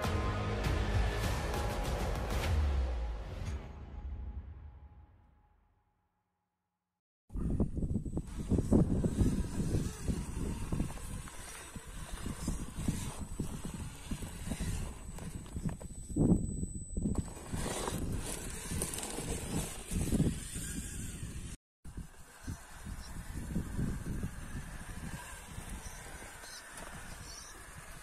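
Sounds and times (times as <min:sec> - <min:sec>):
high electric motor whine: 0:07.5 - 0:28.0.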